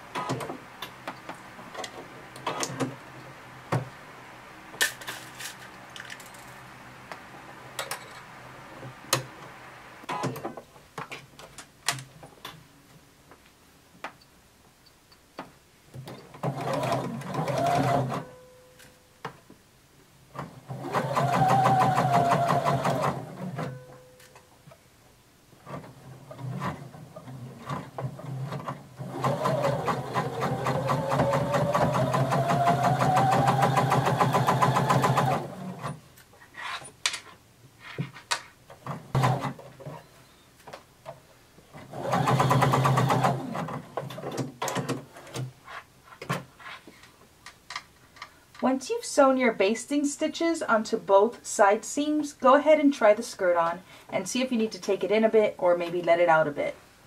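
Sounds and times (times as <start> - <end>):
sewing machine stitching: 16.3 - 18.3, 20.4 - 23.8, 25.6 - 36.0, 39.1 - 39.6, 41.8 - 45.0.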